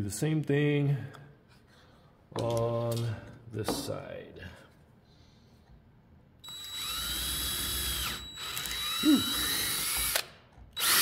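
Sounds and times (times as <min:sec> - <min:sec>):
cordless drill boring through wood: 0:06.5 - 0:11.0.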